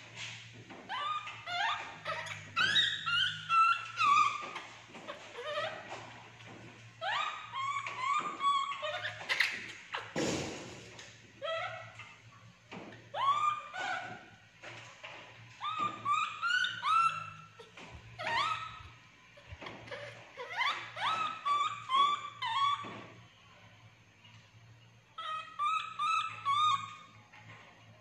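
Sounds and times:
baby monkey whimpering calls: 0.9s - 6.0s, 7.0s - 10.6s, 11.4s - 12.2s, 13.1s - 14.3s, 15.6s - 23.0s, 25.1s - 27.2s.

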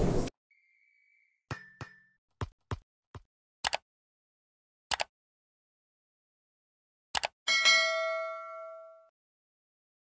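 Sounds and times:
mouse clicks: 3.6s - 3.8s, 4.9s - 5.1s, 7.2s - 7.4s
notification bell ding: 7.5s - 9.1s.

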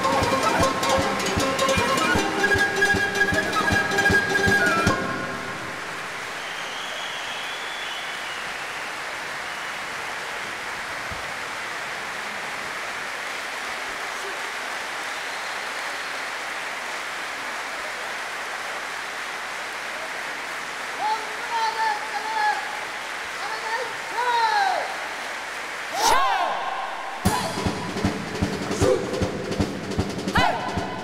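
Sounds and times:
audience applauding: 0.0s - 31.0s.

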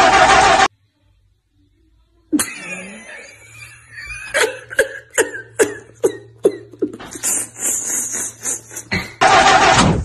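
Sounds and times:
man laughing hard: 2.4s - 9.1s.

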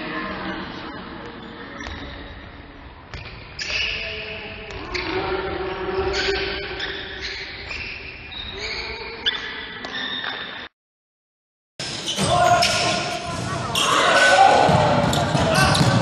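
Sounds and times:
voices in echoing hall: 0.0s - 10.7s, 11.8s - 16.0s
shoe squeaks: 1.4s - 5.3s, 6.0s - 10.7s.

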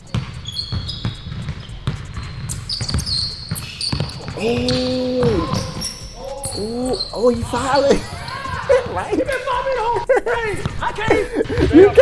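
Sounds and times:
basketball bouncing on gym floor: 0.0s - 9.0s
sneaker squeaks: 0.0s - 9.0s.

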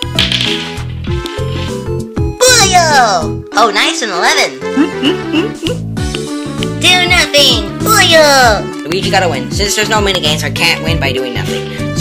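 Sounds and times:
dice clattering on wooden floor: 0.0s - 1.7s.

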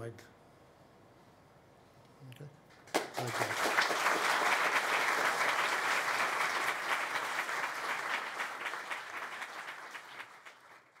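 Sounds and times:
audience applauding: 2.8s - 11.0s.

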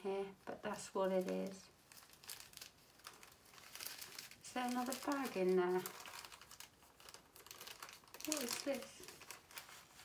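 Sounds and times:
plastic bags rustling: 0.7s - 10.0s.

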